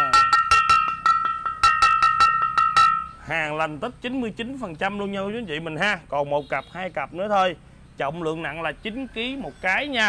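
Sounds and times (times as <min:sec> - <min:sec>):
porcelain vase ringing when tapped: 0:00.0 - 0:03.2.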